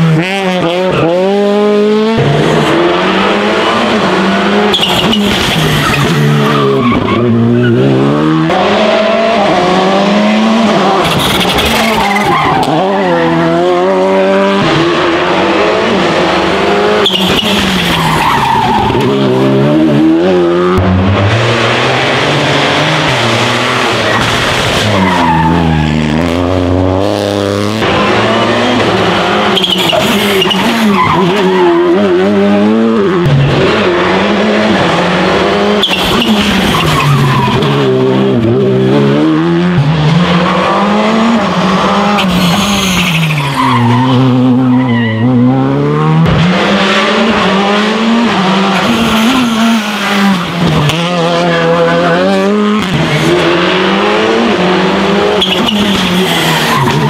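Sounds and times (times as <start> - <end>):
rally car engines revving: 0.0 - 57.0.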